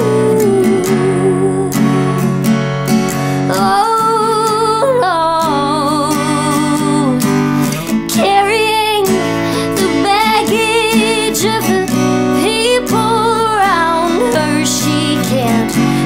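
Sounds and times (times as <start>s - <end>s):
woman singing with vibrato: 0.0s - 2.6s, 3.3s - 16.0s
strummed acoustic guitar: 0.0s - 16.0s.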